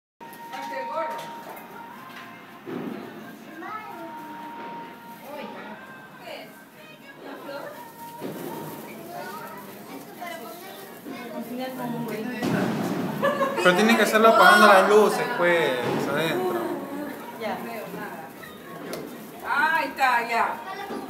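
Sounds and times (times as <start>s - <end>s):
background music: 0.2s - 9.3s, 12.7s - 17.2s
voices talking and calling out: 4.0s - 21.0s.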